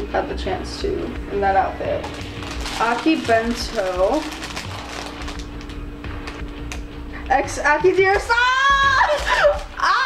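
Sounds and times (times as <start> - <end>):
speech: 0.0 - 2.0, 2.8 - 4.3
steady hummed note: 0.0 - 10.0
plastic bag crinkling: 2.0 - 6.9, 8.1 - 10.0.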